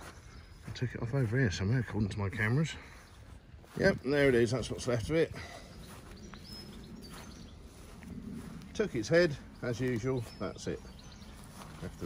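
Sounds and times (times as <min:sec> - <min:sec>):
steady low outdoor rumble: 0:00.0 - 0:12.0
faint high bird chirps: 0:05.7 - 0:08.0.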